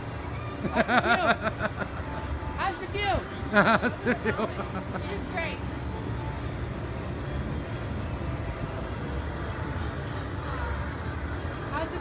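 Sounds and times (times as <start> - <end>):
low mechanical rumble of a ride: 0.0 - 12.0.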